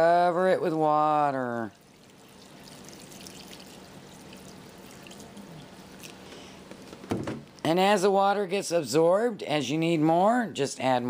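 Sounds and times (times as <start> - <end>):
water pouring into a glass bowl: 1.7 - 6.2.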